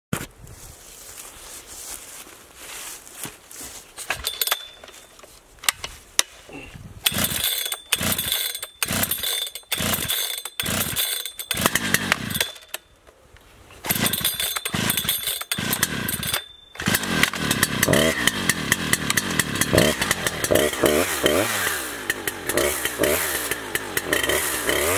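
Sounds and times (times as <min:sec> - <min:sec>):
chainsaw starter cord pulls: 0:04.1 - 0:05.0, 0:07.0 - 0:12.8, 0:13.8 - 0:24.9
chainsaw engine revving: 0:07.1 - 0:12.7, 0:13.8 - 0:24.9.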